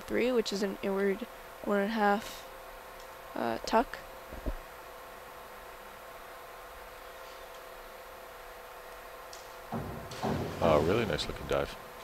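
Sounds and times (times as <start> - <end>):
microphone hum and hiss: 3.6 - 5.0.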